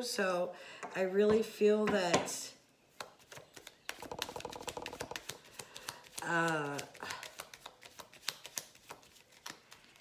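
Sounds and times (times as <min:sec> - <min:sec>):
cards being shuffled: 0:03.0 - 0:10.0.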